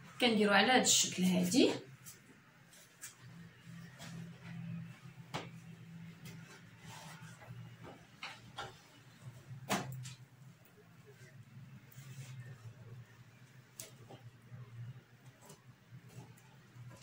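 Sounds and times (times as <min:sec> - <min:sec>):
low steady hum: 0:00.0 - 0:17.0
fabric rustling: 0:01.9 - 0:17.0.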